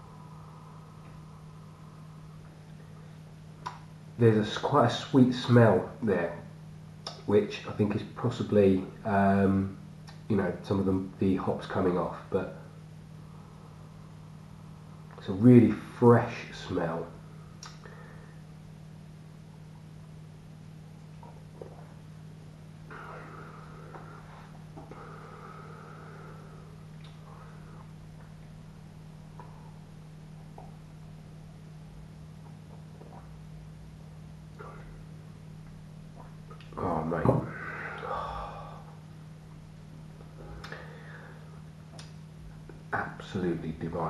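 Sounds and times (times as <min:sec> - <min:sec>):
steady low hum: 0:00.0 - 0:44.0
person sipping a drink: 0:21.1 - 0:22.0, 0:22.9 - 0:28.4, 0:32.3 - 0:33.4
man breathing out: 0:22.9 - 0:27.9, 0:37.5 - 0:39.0, 0:40.4 - 0:41.6.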